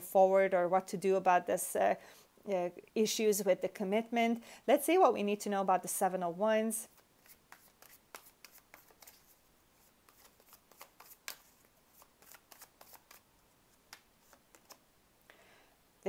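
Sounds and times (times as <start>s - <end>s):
cards being shuffled: 6.9s - 14.8s.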